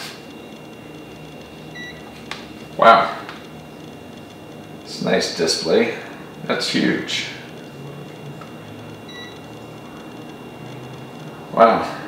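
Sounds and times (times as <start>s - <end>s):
short electronic beep: 9.1s - 9.4s.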